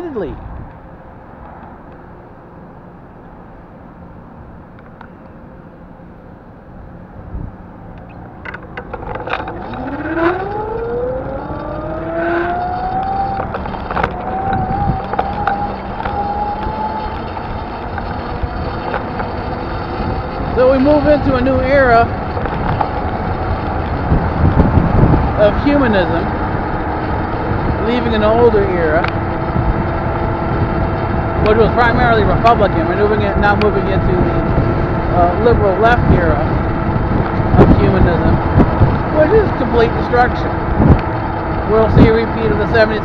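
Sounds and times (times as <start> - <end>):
road and wind noise: 0.0 - 43.0
electric motor whine: 9.2 - 25.4.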